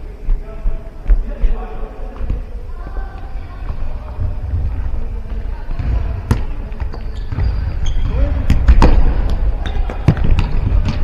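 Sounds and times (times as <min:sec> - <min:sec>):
steady low rumble: 0:00.0 - 0:06.4
ball kicked with a thud: 0:07.2 - 0:11.0.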